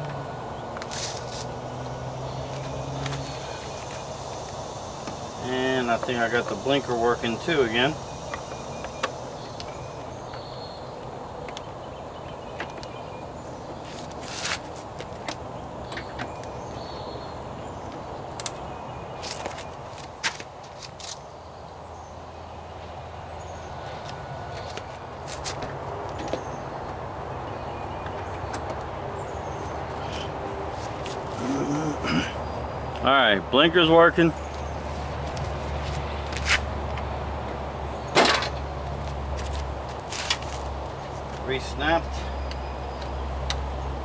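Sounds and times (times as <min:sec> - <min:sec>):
high insect drone: 0:00.0 - 0:44.0.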